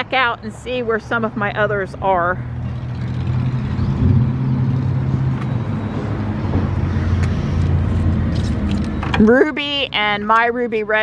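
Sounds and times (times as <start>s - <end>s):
motor vehicle rumbling: 0.0s - 11.0s
outdoor traffic noise: 0.0s - 11.0s.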